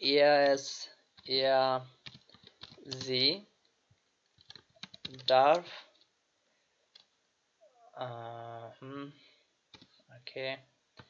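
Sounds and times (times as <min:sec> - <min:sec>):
person speaking: 0:00.0 - 0:01.9, 0:02.7 - 0:03.5, 0:05.0 - 0:06.0, 0:07.9 - 0:09.2, 0:10.1 - 0:10.6
keyboard keys clicking: 0:02.0 - 0:03.2, 0:04.4 - 0:05.6.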